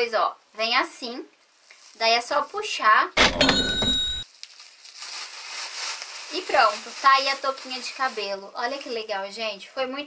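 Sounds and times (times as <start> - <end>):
cash register ka-ching: 3.2 - 4.2.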